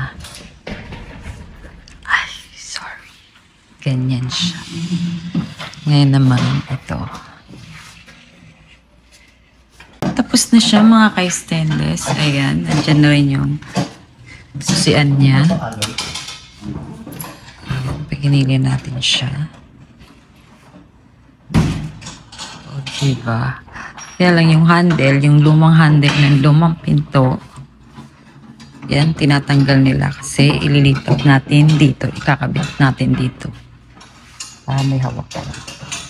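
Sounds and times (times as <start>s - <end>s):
low rumbling handling noise: 0.0s - 23.3s.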